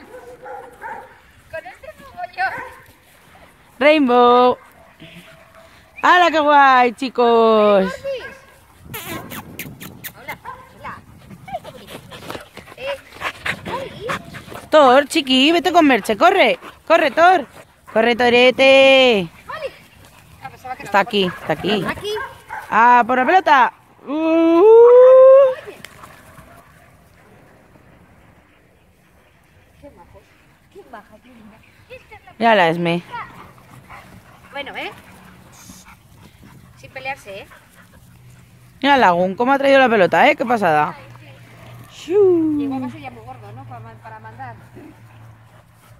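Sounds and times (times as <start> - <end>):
dogs barking: 0.0 - 1.2, 2.4 - 2.9, 10.4 - 11.6, 20.2 - 22.8
person's rising call: 24.1 - 25.7.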